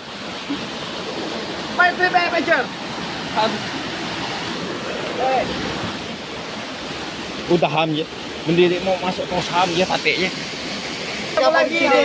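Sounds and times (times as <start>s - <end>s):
waterfall splashing into pool: 0.0s - 12.0s.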